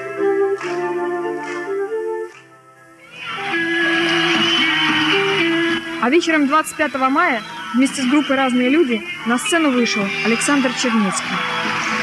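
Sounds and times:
live rock concert: 0:03.0 - 0:12.0.

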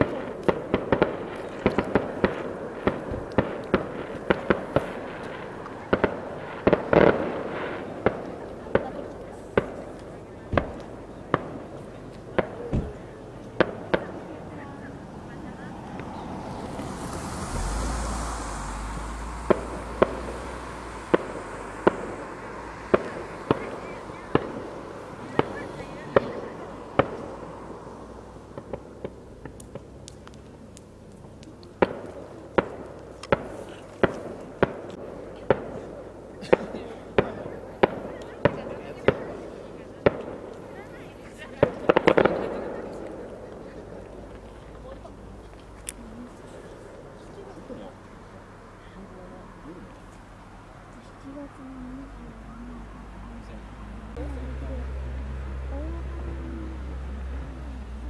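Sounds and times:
distant fireworks bangs: 0:00.0 - 0:30.6, 0:31.8 - 0:47.0.

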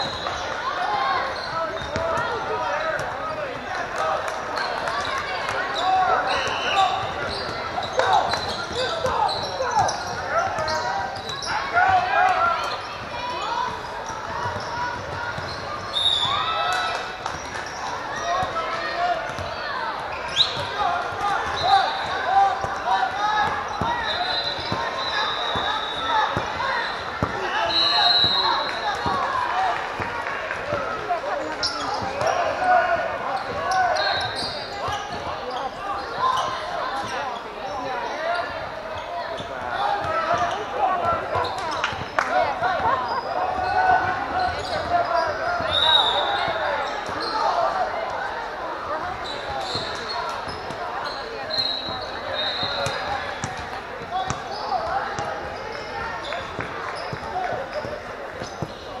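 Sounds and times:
chatter and calls of people: 0:00.0 - 0:59.0.

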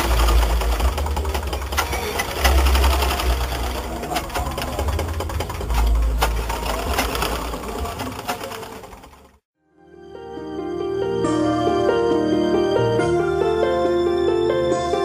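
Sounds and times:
sewing machines clattering: 0:00.0 - 0:09.5.

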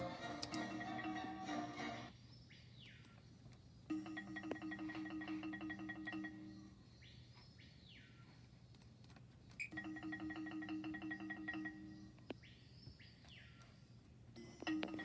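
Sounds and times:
bell-like mallet percussion music: 0:03.9 - 0:06.6, 0:09.7 - 0:12.0, 0:14.4 - 0:15.0.

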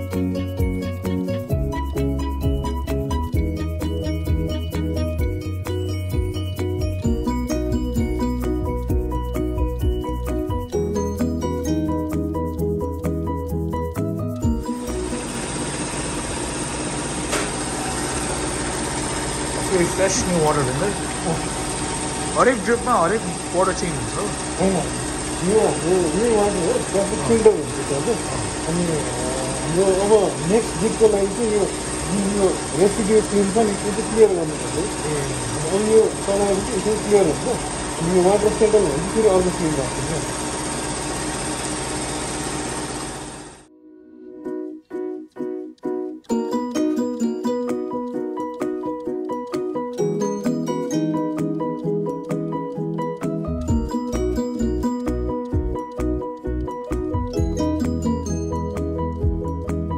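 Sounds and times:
background music: 0:00.0 - 0:15.6, 0:22.4 - 0:40.3, 0:43.7 - 0:59.9
machine hum: 0:14.5 - 0:43.7.

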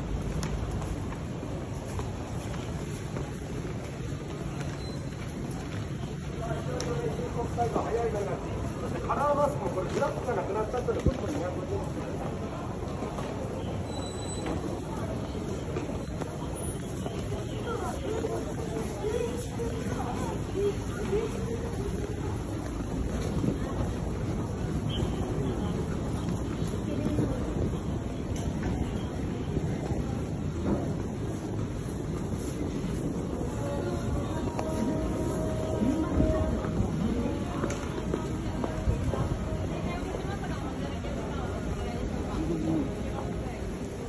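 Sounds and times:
crowd din: 0:10.7 - 0:44.0
wind noise on microphone: 0:13.8 - 0:43.0.

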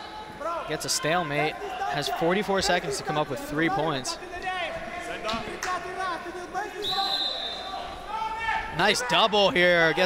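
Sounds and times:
referee's whistle blast: 0:06.8 - 0:07.8.

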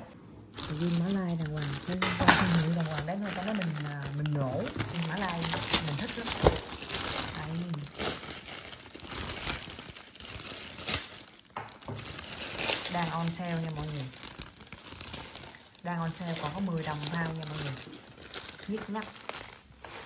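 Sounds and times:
plastic bags crinkling: 0:00.5 - 0:20.0.

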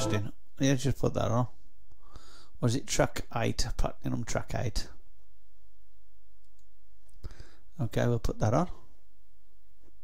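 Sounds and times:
man speaking: 0:00.0 - 0:01.5, 0:07.8 - 0:08.8.

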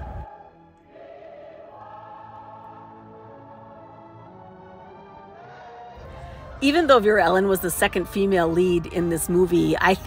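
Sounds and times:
soft choir-like chords: 0:00.0 - 0:10.0.

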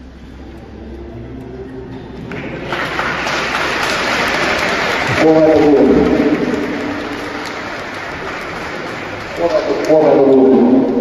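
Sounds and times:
quiet murmur in large hall: 0:00.0 - 0:11.0
congregation applauding: 0:02.3 - 0:11.0.

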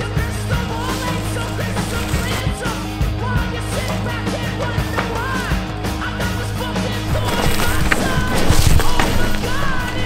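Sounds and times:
bike tyres skidding over dirt: 0:00.0 - 0:03.1, 0:04.8 - 0:10.0
music: 0:00.0 - 0:10.0
bike knocking and rattling: 0:00.3 - 0:02.7, 0:04.5 - 0:10.0.

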